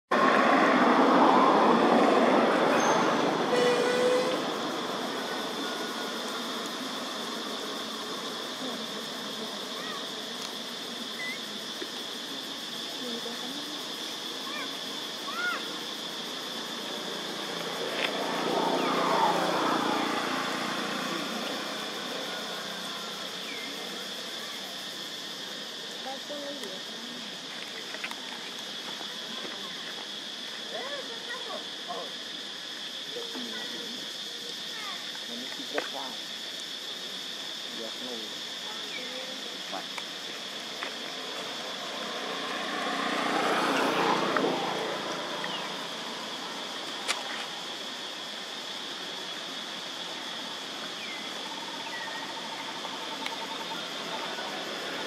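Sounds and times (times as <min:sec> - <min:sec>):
vehicle passing: 0:00.1 - 0:08.4, 0:15.8 - 0:24.3, 0:40.4 - 0:47.8, 0:52.3 - 0:55.0.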